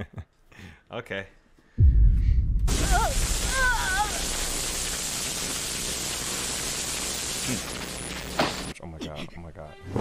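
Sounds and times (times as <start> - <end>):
deep boom: 1.8 - 4.5
loud static-like hiss: 2.7 - 8.7.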